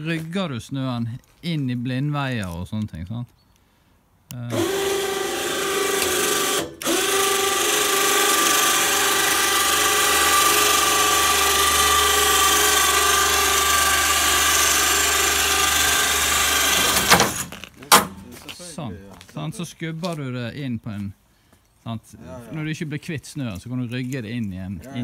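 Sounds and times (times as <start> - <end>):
electric winch motor whining: 4.5 - 17.7.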